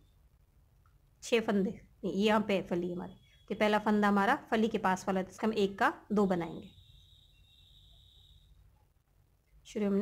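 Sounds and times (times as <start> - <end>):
faint high-pitched tone: 2.0 - 10.0.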